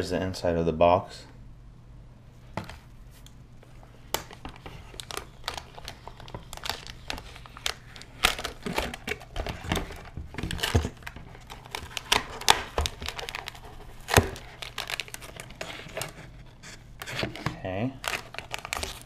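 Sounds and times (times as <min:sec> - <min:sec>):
plastic wrapping crinkling: 0:02.6 - 0:19.0.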